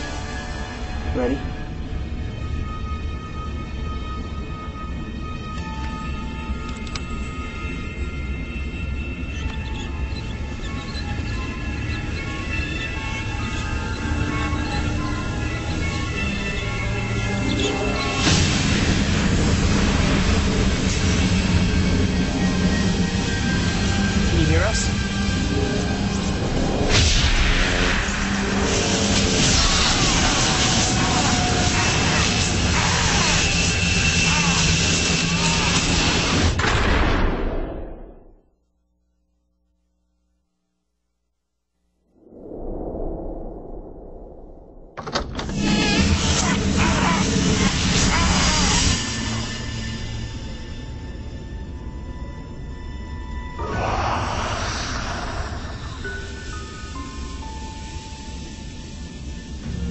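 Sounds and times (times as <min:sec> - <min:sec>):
low rumbling drone: 0:00.0 - 0:38.5, 0:41.8 - 0:59.9
rushing whoosh: 0:42.1 - 0:45.0, 0:53.6 - 0:57.1.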